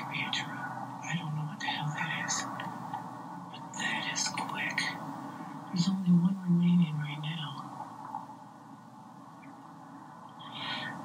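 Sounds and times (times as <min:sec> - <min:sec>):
person whispering: 0:00.0 - 0:02.7, 0:03.5 - 0:05.0, 0:05.7 - 0:07.7, 0:10.4 - 0:11.0
steady background noise: 0:00.0 - 0:11.0
low voice speaking: 0:05.7 - 0:07.7.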